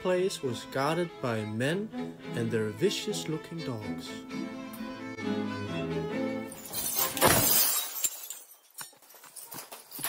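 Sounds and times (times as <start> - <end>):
glass shards tinkling: 6.5 - 10.0
glass shattering: 6.5 - 10.0.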